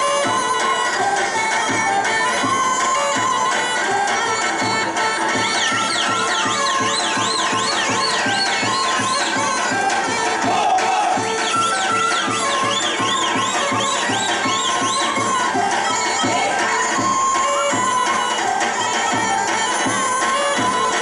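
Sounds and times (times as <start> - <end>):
folk dance music: 0.0 - 21.0.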